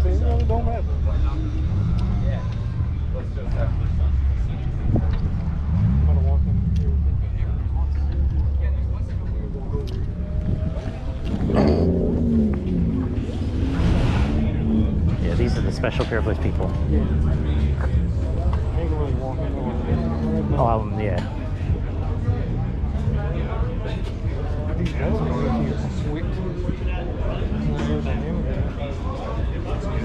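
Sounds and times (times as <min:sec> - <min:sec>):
people talking: 0:00.0 - 0:05.3, 0:05.9 - 0:11.9, 0:12.6 - 0:30.0
steady low rumble: 0:00.0 - 0:30.0.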